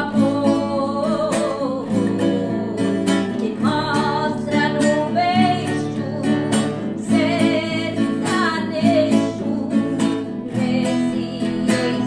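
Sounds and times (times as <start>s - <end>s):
acoustic guitar strumming: 0.0s - 12.0s
woman singing: 0.0s - 12.0s.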